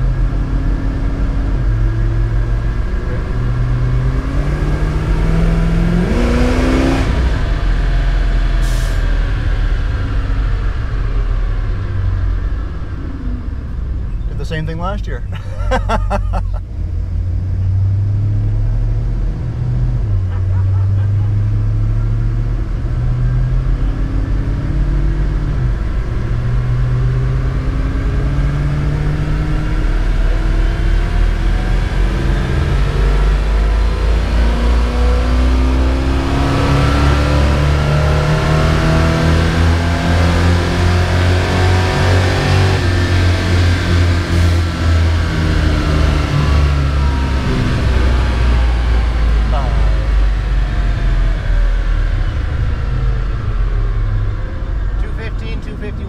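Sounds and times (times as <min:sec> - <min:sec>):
car engine revving under load: 0:00.0 - 0:56.0.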